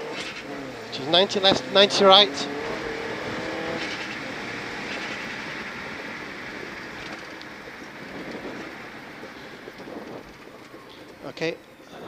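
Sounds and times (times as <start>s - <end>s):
road tyre and wind rumble: 0.0s - 12.0s.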